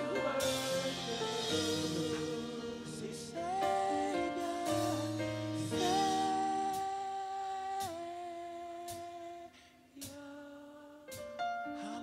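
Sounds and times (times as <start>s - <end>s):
singers holding gospel chord: 0.0s - 9.5s.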